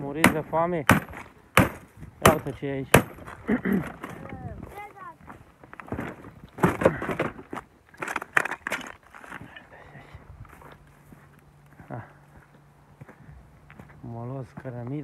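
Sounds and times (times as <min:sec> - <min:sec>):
sharp knocks: 0:00.2 - 0:03.3.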